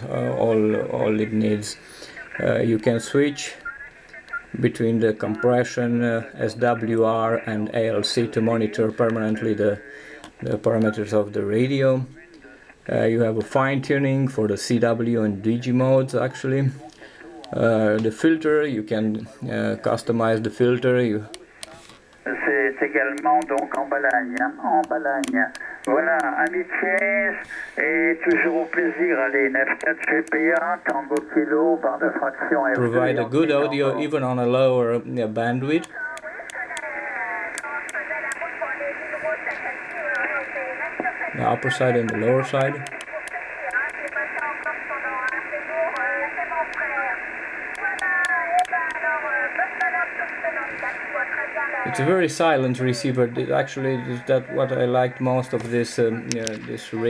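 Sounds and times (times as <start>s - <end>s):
radio voice over speaker: 0.0s - 13.0s, 19.2s - 34.6s, 35.2s - 57.0s
sharp clicks: 37.5s - 38.4s, 42.1s - 46.1s.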